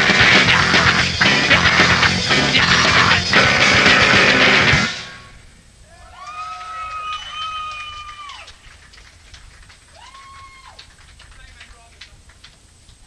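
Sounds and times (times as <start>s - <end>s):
loud live punk music: 0.0s - 5.3s
crowd whooping: 0.0s - 8.8s, 9.7s - 11.0s.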